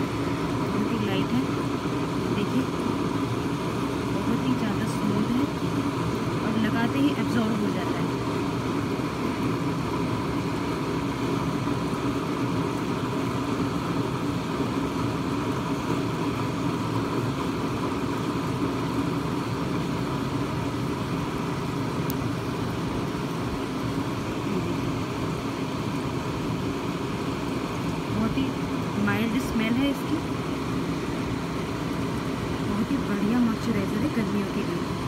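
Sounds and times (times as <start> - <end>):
low hum with hiss: 0.0 - 35.0.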